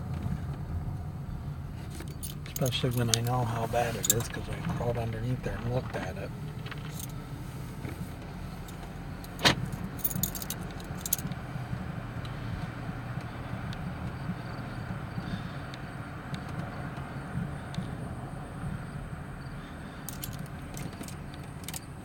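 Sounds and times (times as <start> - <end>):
car engine and road noise: 0.0 - 22.0.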